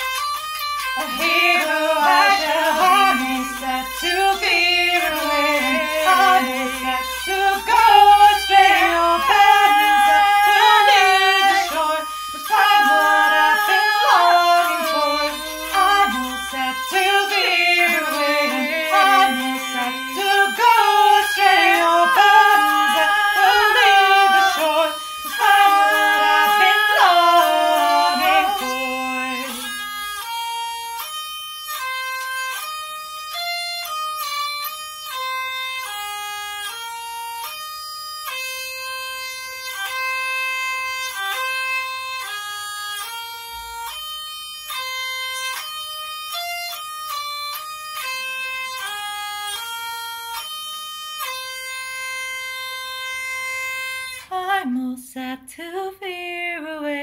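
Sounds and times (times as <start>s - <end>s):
hurdy-gurdy folk melody: 0.0s - 54.8s
woman singing: 1.0s - 29.8s, 54.2s - 57.0s.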